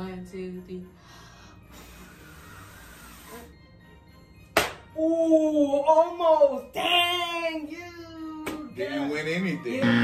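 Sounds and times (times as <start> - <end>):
person blowing out candles: 1.8 - 3.5
sharp slap: 4.5 - 4.9.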